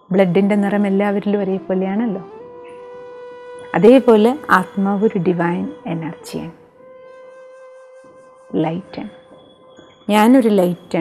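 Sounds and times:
music with steady drone note: 0.0 - 11.0
woman speaking: 0.1 - 2.3, 3.8 - 6.5, 10.1 - 11.0.

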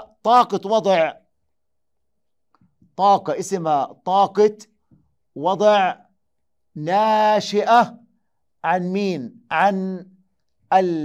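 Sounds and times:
man speaking: 0.0 - 1.2, 3.0 - 4.6, 5.4 - 6.0, 6.8 - 8.0, 8.6 - 10.0, 10.7 - 11.0.

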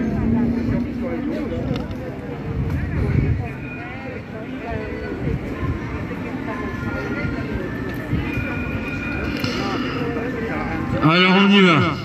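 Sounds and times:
people talking indistinctly: 0.0 - 12.0
street noise: 0.0 - 12.0.

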